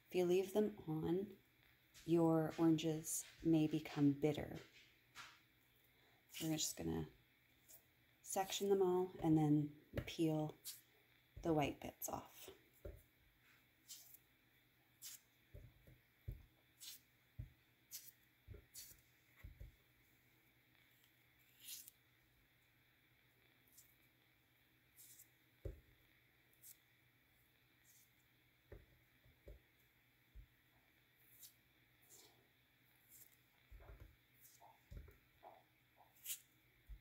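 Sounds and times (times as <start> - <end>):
fingers pulling fruit segments apart: 21.0 - 22.0.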